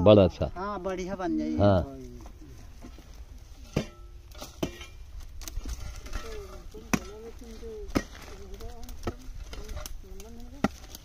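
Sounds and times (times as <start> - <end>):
hoe striking dry earth: 3.6 - 11.0.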